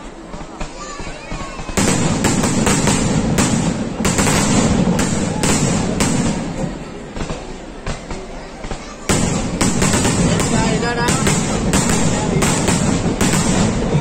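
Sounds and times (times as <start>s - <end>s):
fireworks bursting: 0.0s - 14.0s
sharp bangs and crackling: 0.3s - 14.0s.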